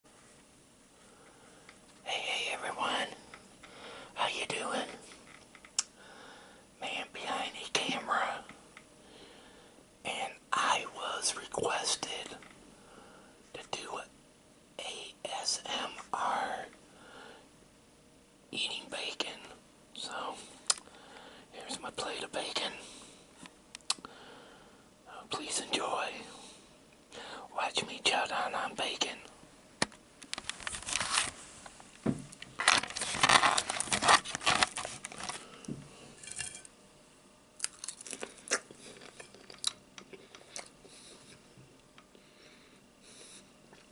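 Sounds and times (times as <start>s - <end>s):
man whispering: 2.0s - 3.3s, 4.2s - 5.1s, 6.8s - 8.6s, 10.0s - 12.4s, 13.5s - 14.1s, 14.8s - 16.8s, 18.5s - 20.5s, 21.5s - 22.9s, 25.0s - 26.5s, 27.4s - 29.3s.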